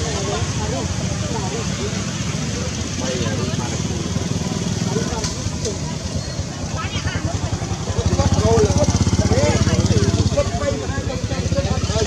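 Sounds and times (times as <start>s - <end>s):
people talking: 0.0s - 12.0s
small engine running: 7.0s - 12.0s.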